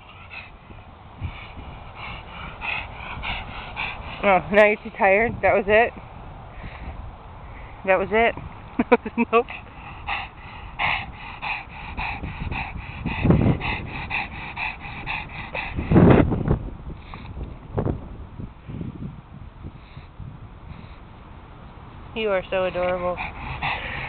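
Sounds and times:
dog panting rapidly: 0:00.0 - 0:05.2, 0:09.3 - 0:16.3, 0:22.4 - 0:24.0
deep puffs of breath: 0:06.5 - 0:07.8, 0:19.7 - 0:21.1, 0:23.2 - 0:24.0.

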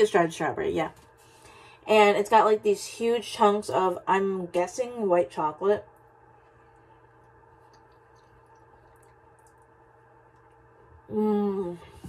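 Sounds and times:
low room hum: 0:00.0 - 0:12.0
person chewing soft cookie: 0:06.6 - 0:11.1.

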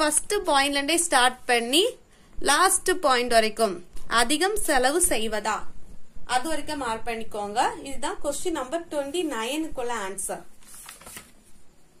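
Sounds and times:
book pages turning: 0:10.6 - 0:11.6.

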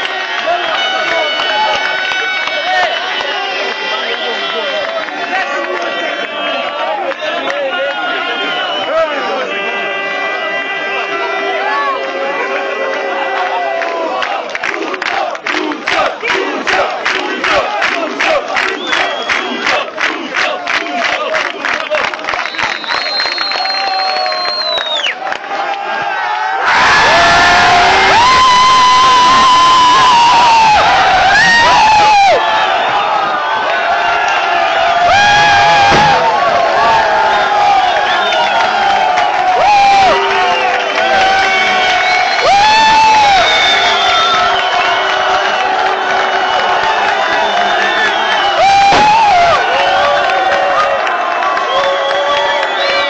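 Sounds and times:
crowd cheering and shouting: 0:00.0 - 0:53.0
long high whistle: 0:22.4 - 0:25.2, 0:39.6 - 0:45.2, 0:46.3 - 0:49.8, 0:51.6 - 0:53.0.

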